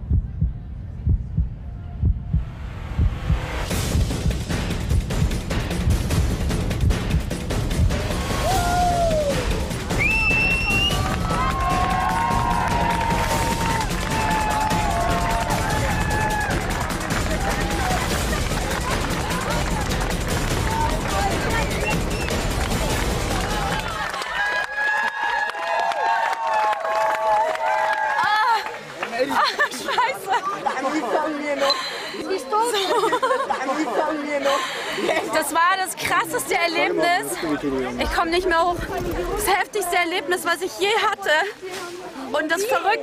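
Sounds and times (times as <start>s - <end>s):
background music: 0.8s - 24.5s
crowd cheering: 8.1s - 35.4s.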